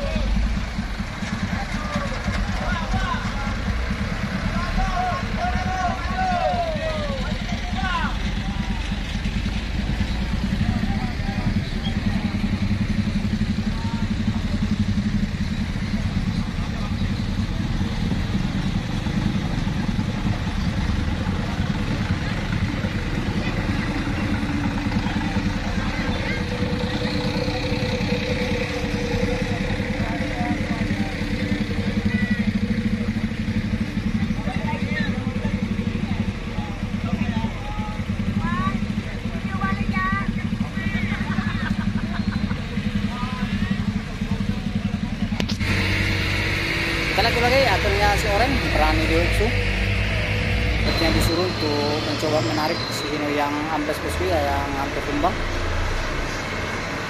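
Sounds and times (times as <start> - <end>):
people's voices: 0.0 - 57.0
vehicle engine running: 0.0 - 57.0.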